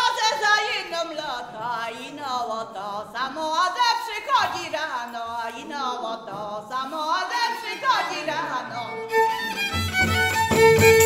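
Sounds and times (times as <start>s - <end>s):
fiddle holding notes: 8.7s - 11.0s.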